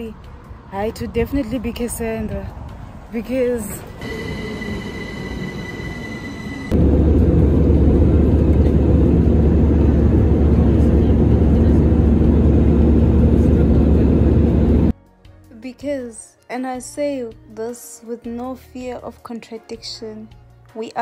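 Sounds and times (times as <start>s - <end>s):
electric train whine: 4.0s - 14.9s
jet airliner cabin drone: 4.0s - 14.9s.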